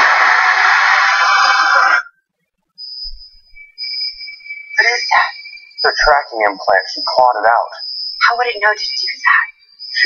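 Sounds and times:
faint high steady tone: 3.0s - 10.0s.

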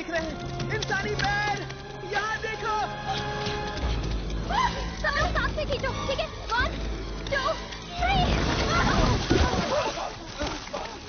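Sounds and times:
splashing in muddy water: 6.4s - 11.0s.

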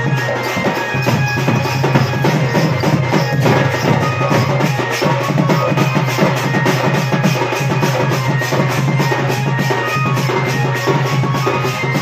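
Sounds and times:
dhol drums beating fast: 0.0s - 12.0s
folk dance music: 0.0s - 12.0s.

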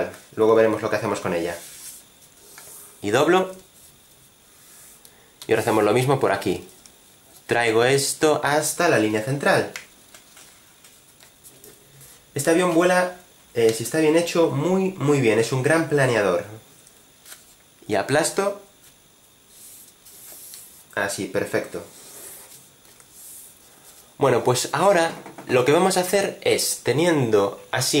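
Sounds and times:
soft paper swishes: 1.4s - 2.9s
paper rustling and crackling: 10.1s - 11.4s.

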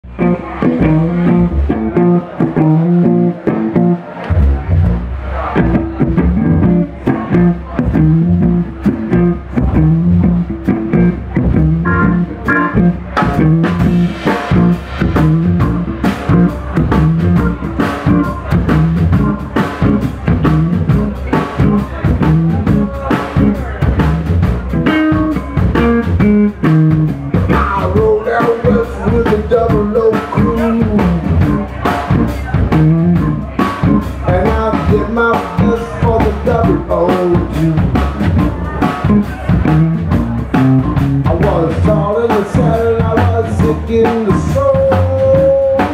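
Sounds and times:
electric guitar riffing: 0.0s - 45.9s
sousaphone bass line: 0.0s - 45.9s
drum kit with cymbals: 0.1s - 45.9s.

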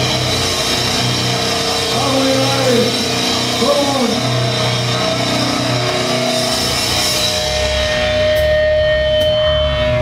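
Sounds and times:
distorted guitars and bass: 0.0s - 10.0s
drums: 0.0s - 10.0s.

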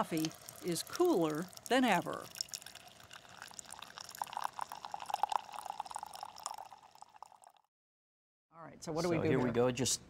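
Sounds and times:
coffee pouring into a glass mug: 0.0s - 7.7s.

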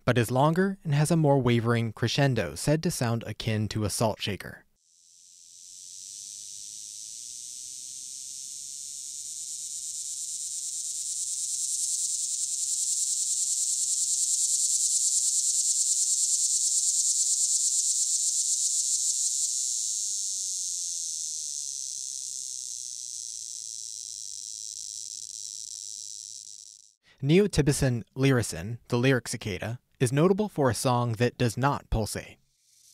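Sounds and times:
cicada high buzzing song: 4.8s - 27.0s, 32.5s - 32.9s.

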